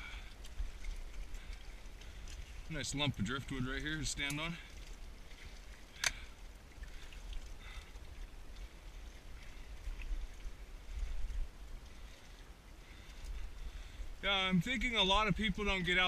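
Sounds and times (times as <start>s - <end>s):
water lapping against rocks: 0.0s - 16.0s.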